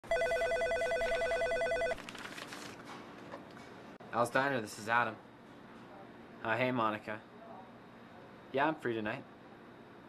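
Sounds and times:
electronic telephone ringer warbling: 0.1 - 2.0.

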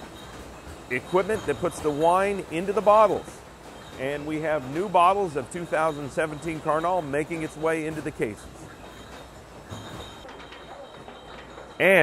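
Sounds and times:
bottling machine running: 0.0 - 12.0
glass bottles clinking: 0.0 - 12.0.

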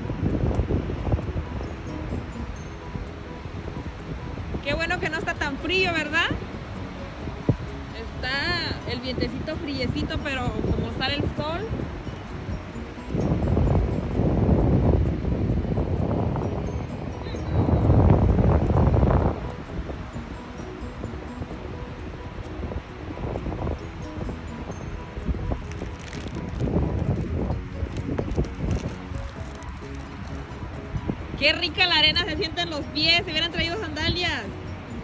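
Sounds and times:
wind on microphone: 0.0 - 35.0.

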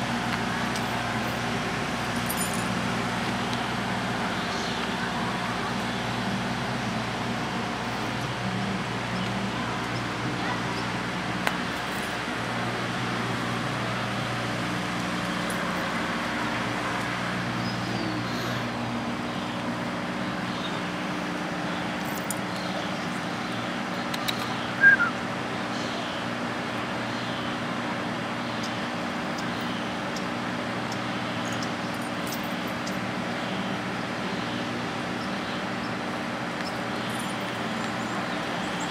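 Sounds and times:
constant low hum: 0.0 - 38.9.

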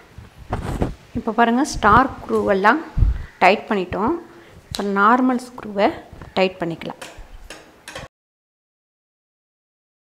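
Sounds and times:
screwdriver metallic ticks: 7.0 - 8.1.

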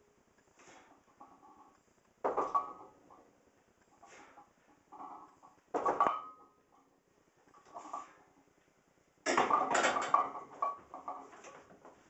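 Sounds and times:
effortful breaths: 0.4 - 1.8, 3.8 - 5.3.

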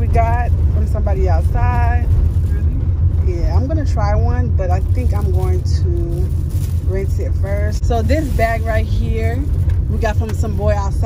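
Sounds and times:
car low rumble: 0.0 - 11.0.

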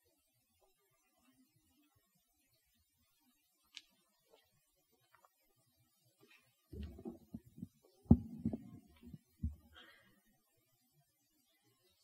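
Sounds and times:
microphone handling thumps: 6.8 - 9.7.

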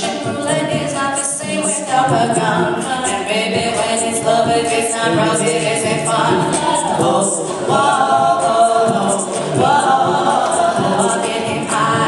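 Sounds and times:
vocal group singing in harmony: 0.0 - 12.0.

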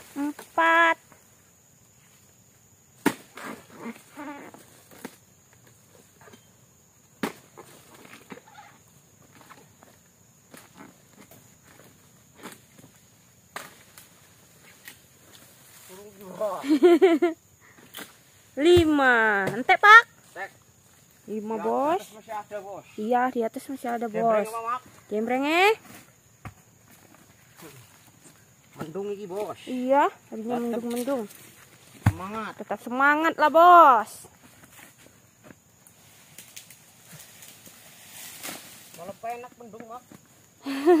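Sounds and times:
chisel chopping palm stalk: 3.0 - 3.6, 7.2 - 8.2, 31.9 - 32.4.

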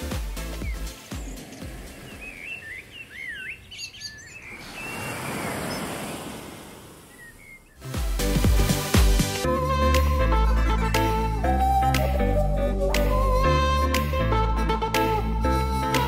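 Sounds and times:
birds chirping: 0.0 - 8.9
wave breaking on sand: 4.5 - 7.2.

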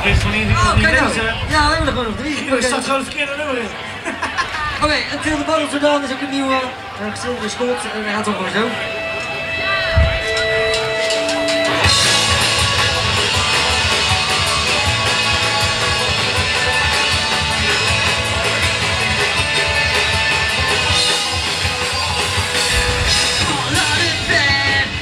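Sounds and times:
live rock band playing: 8.4 - 25.0
man singing: 23.0 - 25.0.

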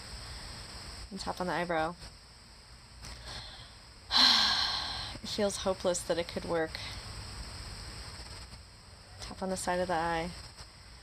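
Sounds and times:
insects droning: 0.0 - 11.0
low outdoor rumble: 0.0 - 11.0.

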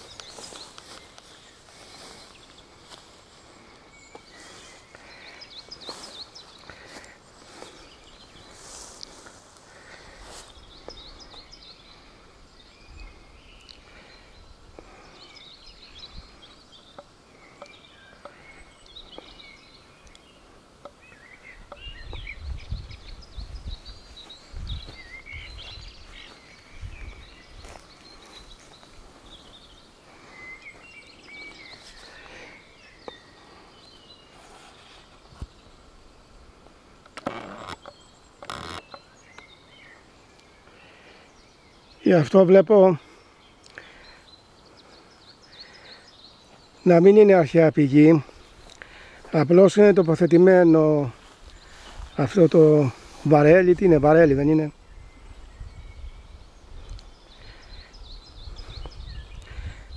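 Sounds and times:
small birds chirping: 0.0 - 59.9.

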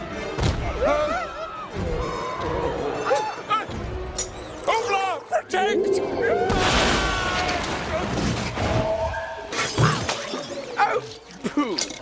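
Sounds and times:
crash with shattering debris: 6.5 - 9.2.

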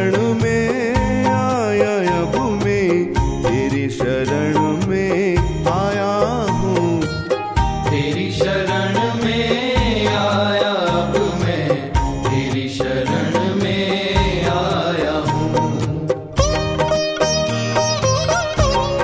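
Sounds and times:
devotional music with percussion: 0.0 - 19.0.

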